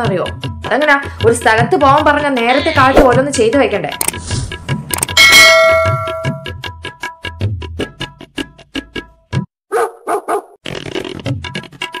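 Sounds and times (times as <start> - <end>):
dog barking: 9.7 - 10.6.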